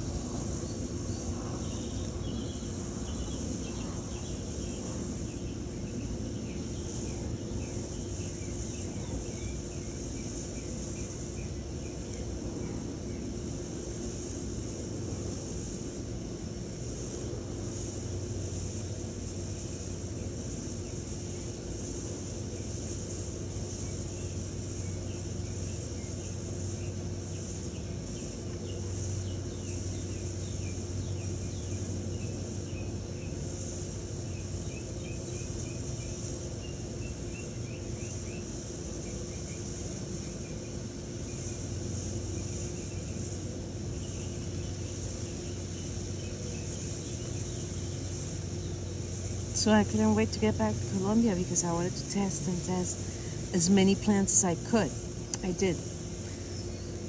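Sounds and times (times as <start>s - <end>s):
high hiss: 0.0s - 57.0s
low hum: 0.0s - 57.0s.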